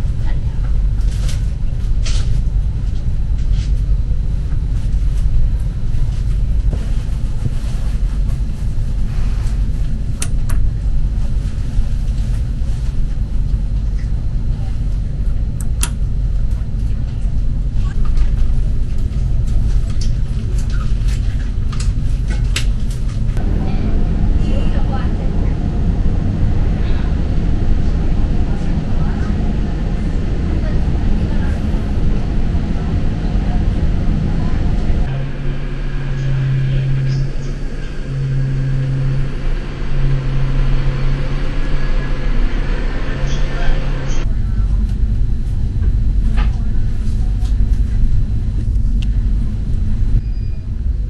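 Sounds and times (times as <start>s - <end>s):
train rumbling inside carriage: 0.0s - 51.0s.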